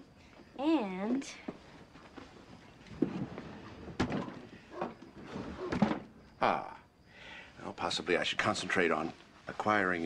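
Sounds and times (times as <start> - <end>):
knocks and thumps: 2.9 - 6.1.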